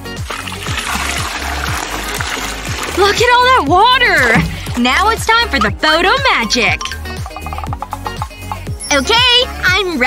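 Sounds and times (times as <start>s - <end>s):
water pouring into plastic bin: 0.0s - 5.2s
background music with drum beat: 0.0s - 10.0s.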